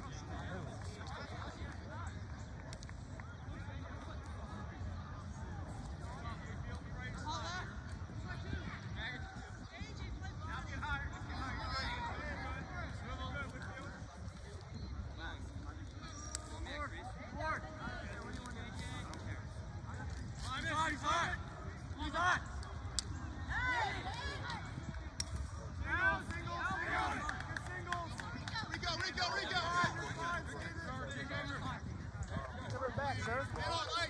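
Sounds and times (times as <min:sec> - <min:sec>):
people shouting and calling: 0:20.5 - 0:25.1, 0:25.7 - 0:34.0.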